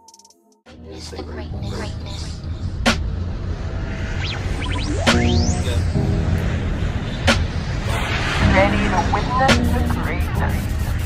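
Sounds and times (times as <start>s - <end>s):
deep bass: 0.7s - 11.0s
sharp hit: 2.5s - 11.0s.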